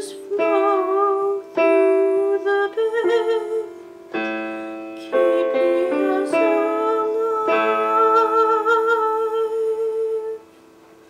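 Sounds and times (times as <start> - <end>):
woman singing with vibrato: 0.0 - 10.6
digital keyboard chord: 0.0 - 11.0.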